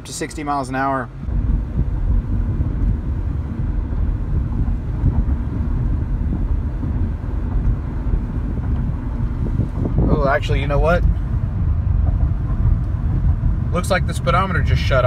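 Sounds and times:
road and engine rumble inside car: 0.0 - 15.0.

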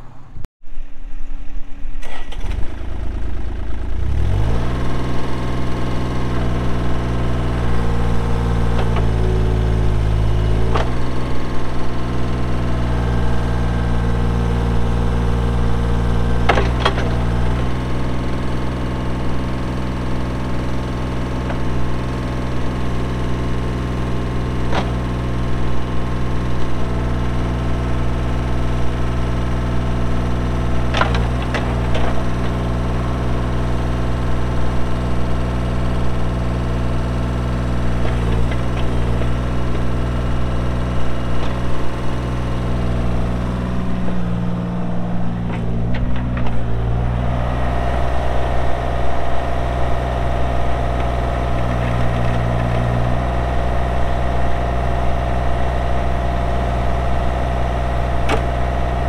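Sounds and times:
diesel engine cranking and running: 2.0 - 59.0.

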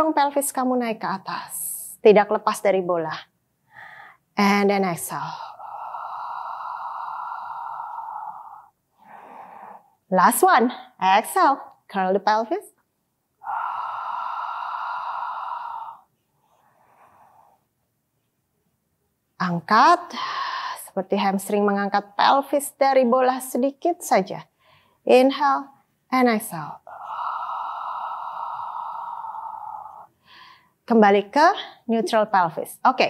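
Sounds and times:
woman exhaling: 5.2 - 9.9, 13.4 - 16.1, 26.9 - 30.5.

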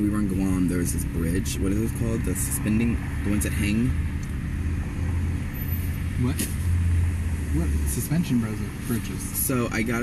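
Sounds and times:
car cabin engine and road rumble: 0.0 - 10.0.

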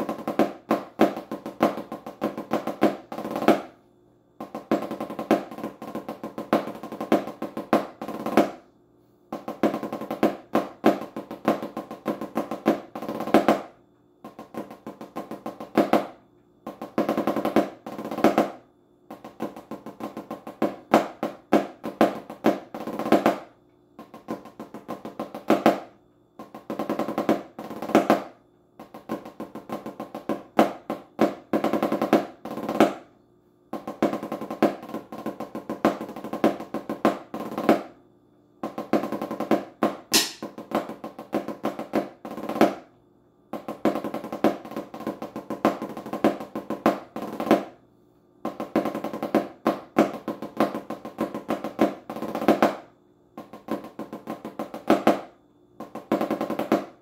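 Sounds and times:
snare drum strokes on practice pad: 0.0 - 3.8, 4.4 - 8.7, 9.3 - 33.1, 33.7 - 38.0, 38.6 - 42.9, 43.5 - 47.8, 48.4 - 57.0.

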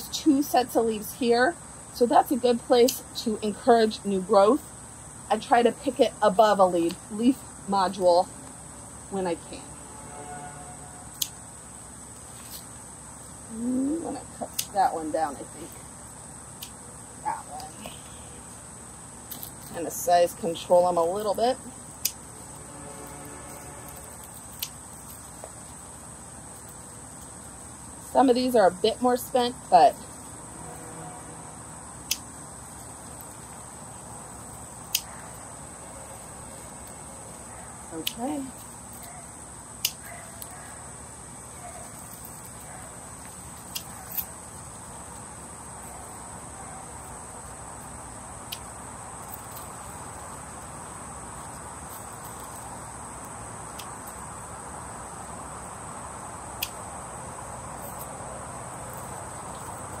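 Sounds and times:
insects droning: 0.0 - 60.0
pruners snipping stems: 11.1 - 11.4, 14.0 - 15.4, 36.7 - 39.2.

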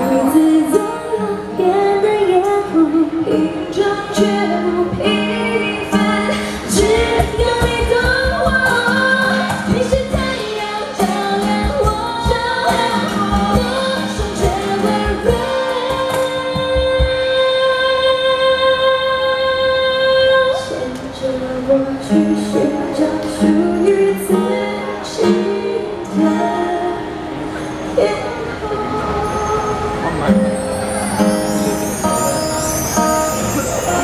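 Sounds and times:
women singing pop song: 0.0 - 30.3
instrumental accompaniment: 29.2 - 34.0.

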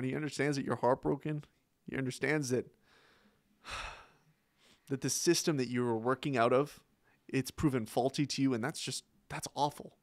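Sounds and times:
man sighing: 3.6 - 4.3.

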